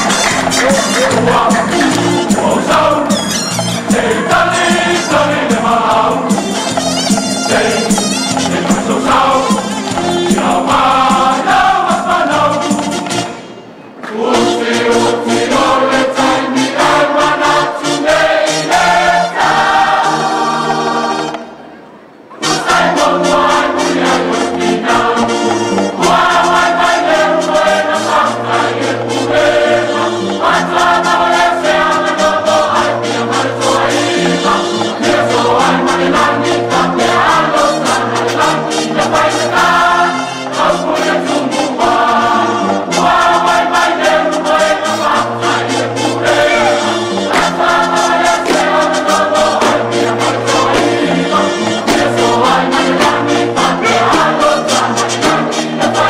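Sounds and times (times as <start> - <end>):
instrumental backing with beat: 0.0 - 21.6, 22.4 - 56.0
choir singing gospel: 0.0 - 21.7, 22.3 - 56.0.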